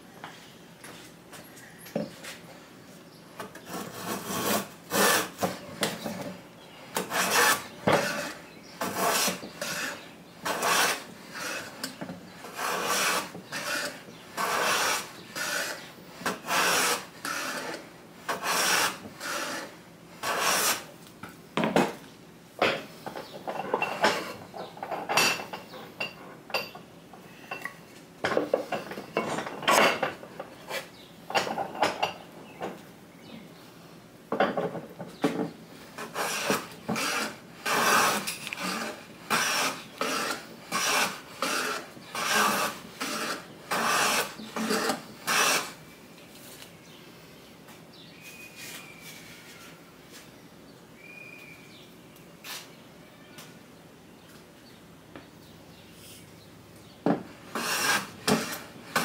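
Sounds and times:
plane rasping on wood: 3.7 - 5.6, 7.0 - 20.9, 36.0 - 45.8, 57.5 - 59.0.

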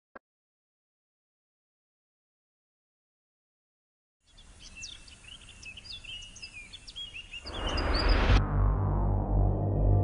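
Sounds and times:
birds chirping and twittering: 4.2 - 8.4
low rumble: 7.5 - 10.0.

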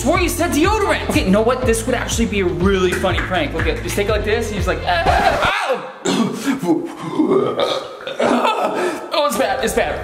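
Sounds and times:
man making croaky burp-like sound: 5.2 - 8.7.

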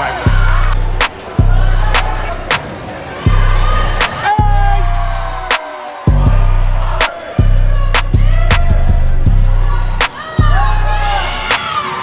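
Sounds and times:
fast hi-hat beat: 0.0 - 12.0
deep bass line: 0.3 - 2.5, 3.2 - 5.5, 6.1 - 11.5.

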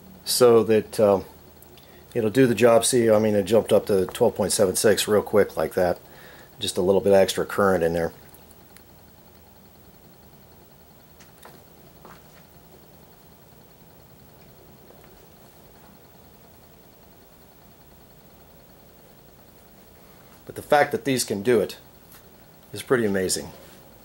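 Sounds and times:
generator low hum: 0.0 - 24.0.

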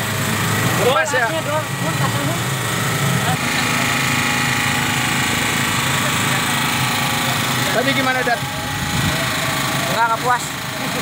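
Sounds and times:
high-pitched whine: 0.0 - 11.0
small engine running: 0.0 - 11.0.

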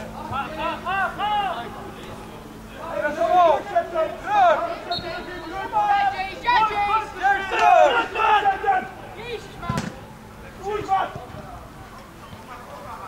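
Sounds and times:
voices shouting: 0.0 - 13.0
football being kicked: 9.7 - 10.0.

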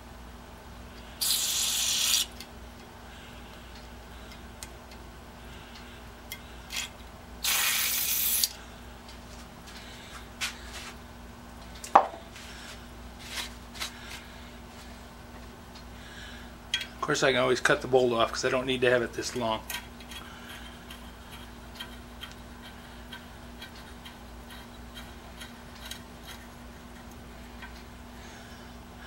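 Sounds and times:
aerosol can spraying: 1.2 - 2.4, 7.4 - 8.6.

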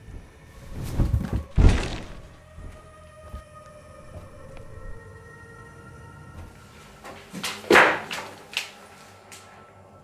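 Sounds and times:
faint musical drone: 0.0 - 10.0.

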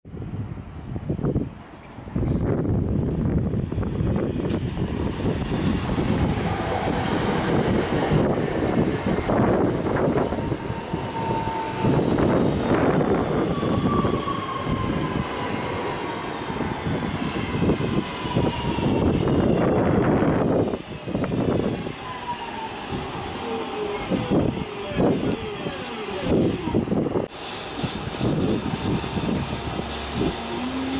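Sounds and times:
train running rumble: 0.1 - 13.9, 16.0 - 30.9
whining train motor tones: 6.8 - 15.6, 20.5 - 30.9.

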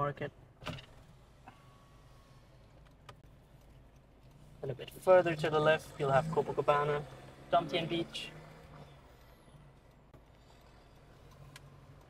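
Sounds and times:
car low rumble: 0.0 - 12.0.

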